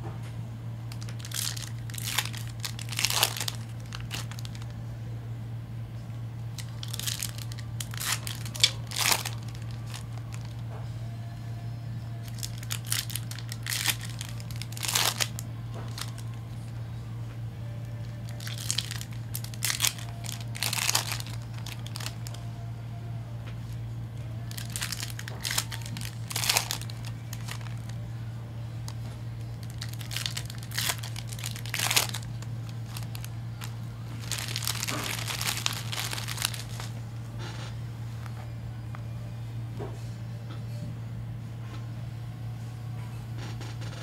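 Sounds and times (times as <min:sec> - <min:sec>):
steady low hum: 0:00.0 - 0:44.0
foil wrappers crinkling and tearing: 0:00.9 - 0:04.8, 0:06.6 - 0:10.6, 0:12.2 - 0:16.7, 0:17.8 - 0:22.5, 0:24.4 - 0:28.1, 0:28.9 - 0:37.0.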